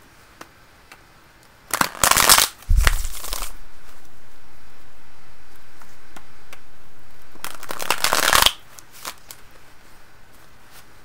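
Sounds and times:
card snaps: 0:01.7 - 0:03.5, 0:07.4 - 0:09.4
cards shuffling: 0:01.7 - 0:03.6, 0:07.3 - 0:09.6.

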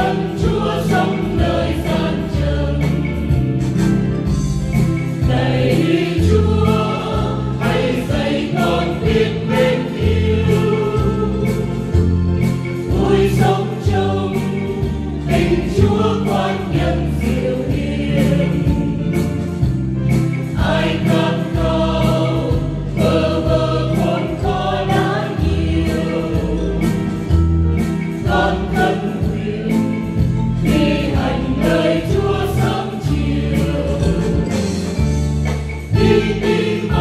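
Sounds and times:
choir singing a hymn: 0:00.0 - 0:35.1, 0:35.8 - 0:37.0
musical accompaniment: 0:00.0 - 0:37.0.

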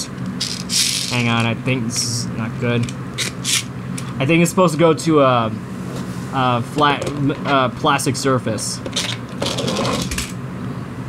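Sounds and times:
toy car gear whirring rattle: 0:00.4 - 0:01.2, 0:08.9 - 0:10.4.

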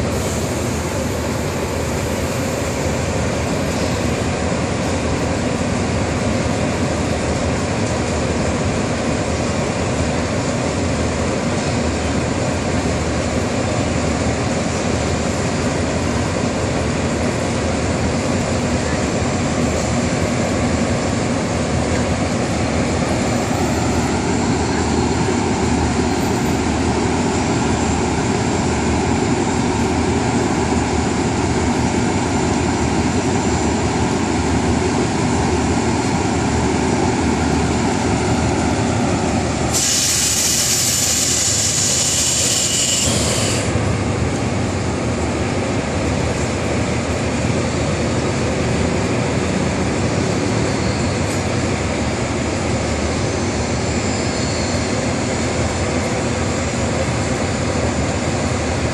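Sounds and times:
loud hiss: 0:00.0 - 0:04.9, 0:39.5 - 0:43.8
diesel locomotive running: 0:00.0 - 0:58.9.

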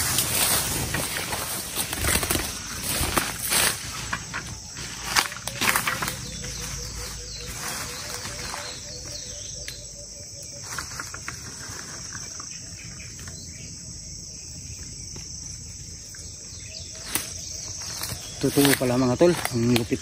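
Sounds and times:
insects buzzing: 0:00.0 - 0:20.0.

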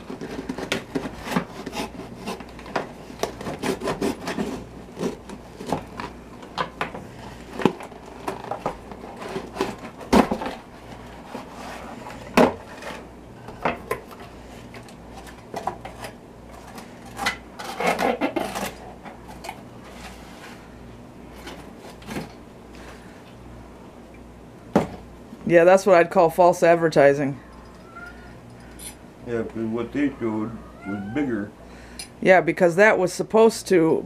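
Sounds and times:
cardboard scraping and rustling: 0:00.0 - 0:06.2, 0:07.0 - 0:13.1, 0:14.7 - 0:23.1.

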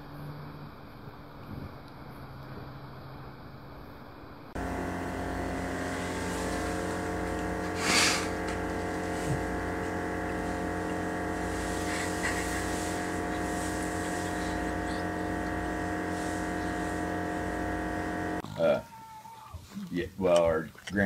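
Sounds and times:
loud hissing burst: 0:04.6 - 0:18.4
droning hum: 0:04.6 - 0:18.5.

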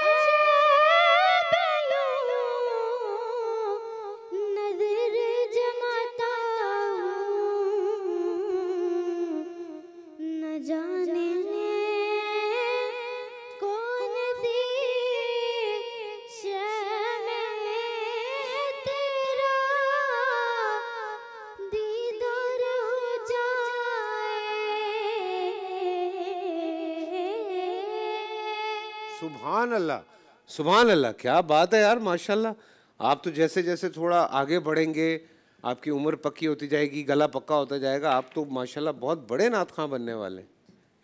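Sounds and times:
boy singing unaccompanied: 0:00.0 - 0:29.5.

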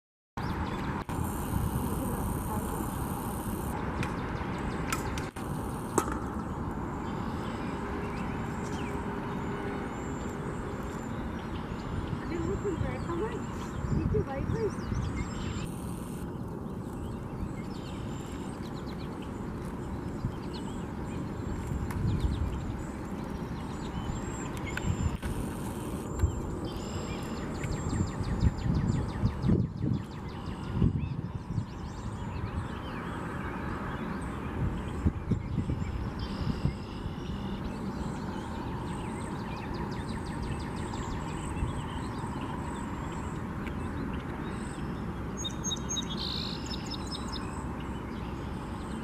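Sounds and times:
small birds chirping: 0:00.4 - 0:49.0.

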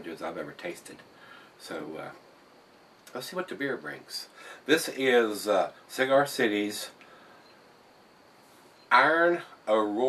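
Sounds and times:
low steady hiss: 0:00.0 - 0:10.0
man's voice: 0:08.9 - 0:10.0.

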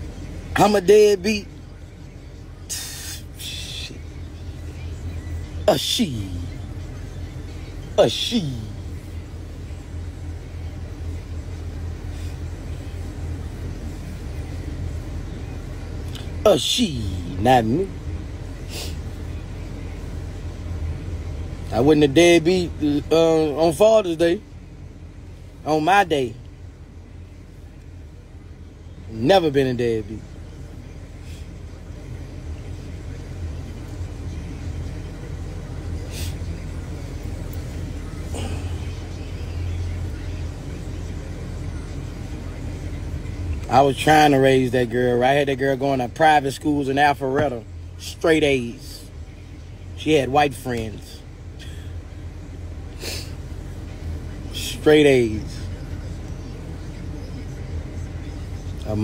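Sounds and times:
car cabin rumble: 0:00.0 - 0:59.0.

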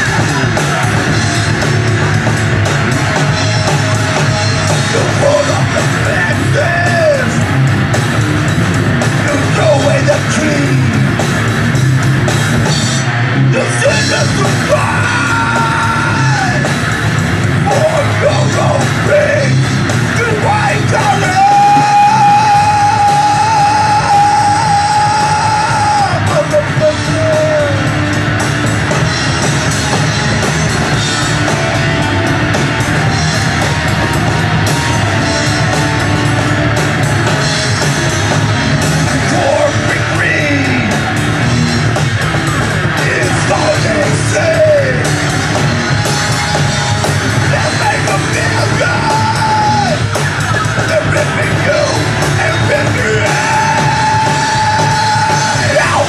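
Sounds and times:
live rock band playing: 0:00.0 - 0:56.0
vocalist yelling: 0:04.8 - 0:07.5, 0:13.5 - 0:16.8, 0:17.6 - 0:28.0, 0:43.0 - 0:45.1, 0:47.5 - 0:50.1, 0:50.8 - 0:56.0.

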